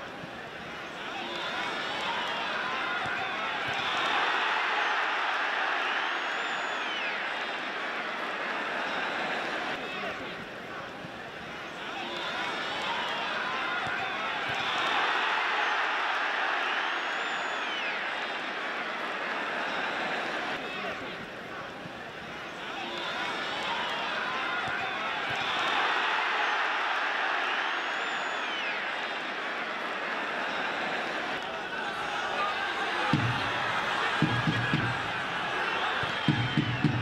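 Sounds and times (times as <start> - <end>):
stadium crowd din: 0.0 - 37.0.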